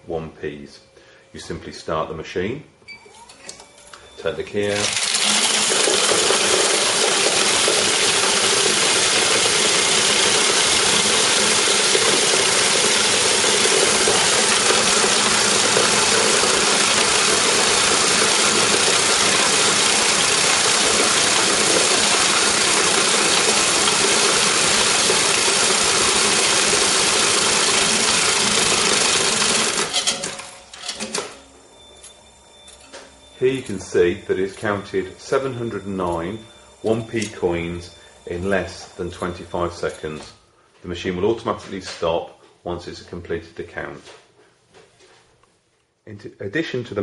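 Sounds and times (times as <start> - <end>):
coin sorter clattering: 4.6 - 31.4.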